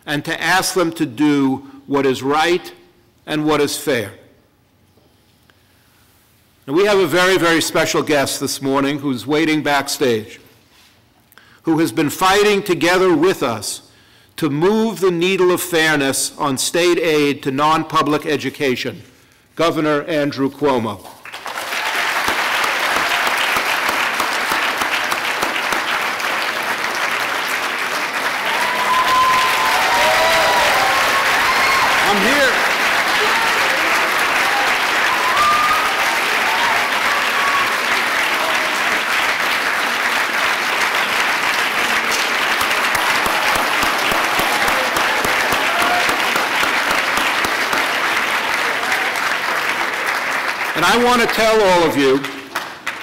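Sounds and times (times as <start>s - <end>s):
crowd applauding and cheering: 21.2s - 53.0s
shouts and whoops: 28.4s - 38.7s, 44.3s - 46.2s.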